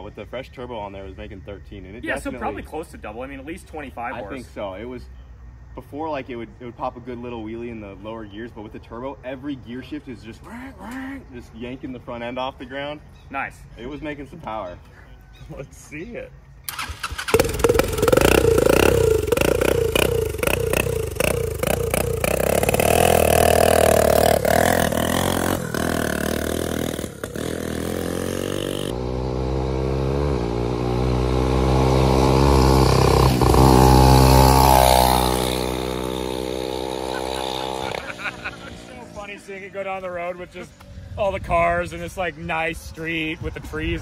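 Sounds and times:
go-kart engine revving: 16.7 - 39.7.

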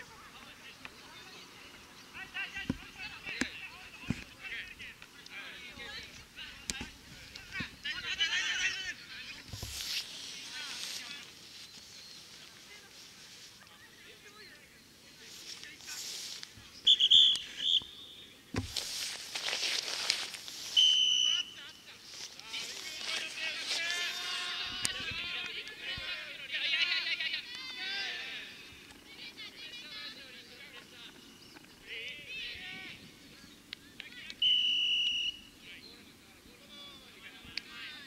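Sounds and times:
referee's whistle blasts: 16.9 - 18.3, 20.8 - 21.6, 34.4 - 35.5
dull thump: 18.5 - 18.9
players shouting: 22.4 - 28.7.

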